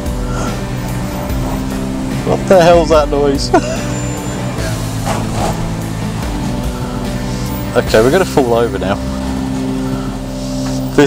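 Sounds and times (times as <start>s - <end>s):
car engine running at low revs: 0.0s - 11.0s.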